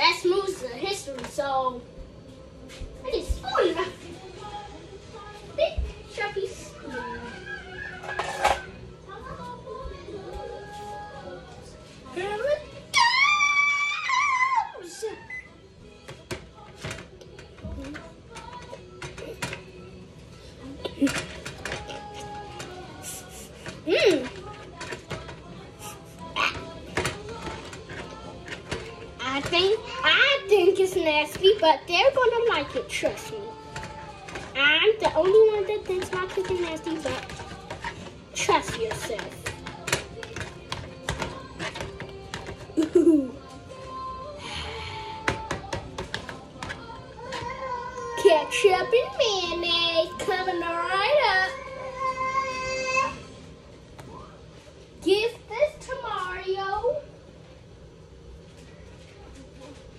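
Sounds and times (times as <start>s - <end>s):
music: 0.0s - 59.9s
spoon scraping plastic tray: 7.9s - 8.7s, 21.1s - 29.8s, 30.6s - 42.8s.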